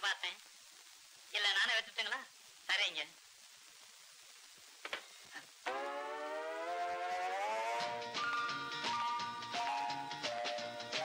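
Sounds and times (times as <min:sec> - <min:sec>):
siren-like rising tone: 0:05.7 - 0:08.2
music notes: 0:05.7 - 0:11.0.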